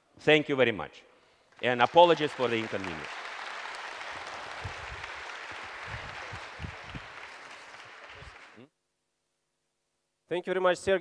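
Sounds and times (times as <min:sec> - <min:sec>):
audience applauding: 0:01.5 - 0:08.6.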